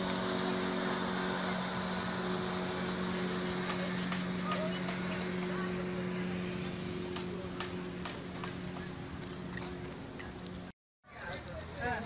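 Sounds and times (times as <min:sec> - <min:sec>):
low hum: 0:00.0 - 0:10.7
footsteps on paved path: 0:06.6 - 0:10.7.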